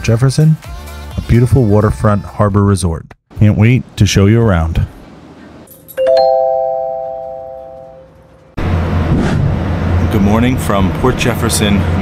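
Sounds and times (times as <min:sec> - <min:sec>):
doorbell-like rising chime: 0:05.8 - 0:08.3.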